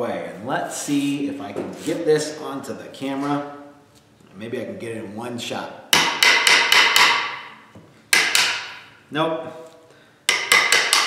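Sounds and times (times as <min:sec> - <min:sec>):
hammer striking chisel: 0:05.9 - 0:08.9, 0:10.3 - 0:11.0.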